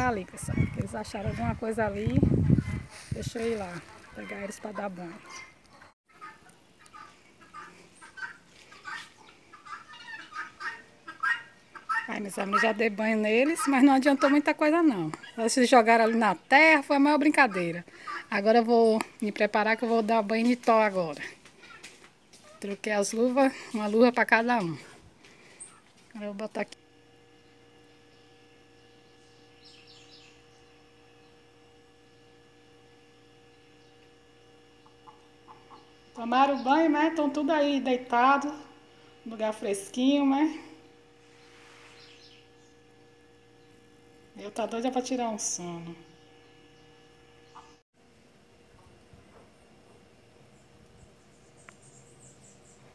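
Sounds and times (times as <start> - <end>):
faint electrical hum: 0.0 - 52.9
poultry calling: 2.4 - 16.5, 17.3 - 18.4, 34.8 - 36.8, 47.4 - 47.8
high bird chirps: 28.8 - 31.3, 41.3 - 42.8.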